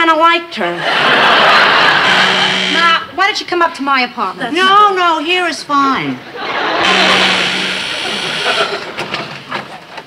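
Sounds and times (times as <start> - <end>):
audience laughing: 0.7 - 3.1, 6.2 - 9.5.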